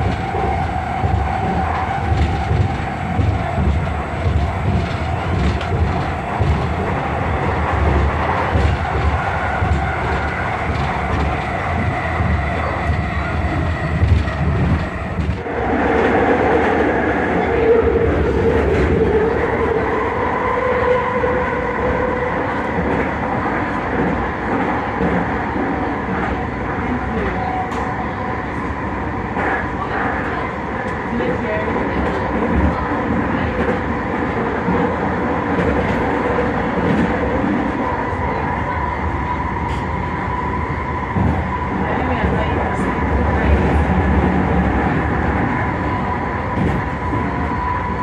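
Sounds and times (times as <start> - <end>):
train wheels rumbling on track: 0.0 - 48.0.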